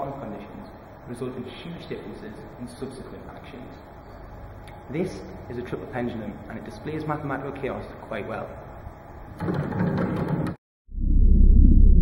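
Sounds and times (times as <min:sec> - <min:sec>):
loud low hum: 0:10.9 - 0:12.0.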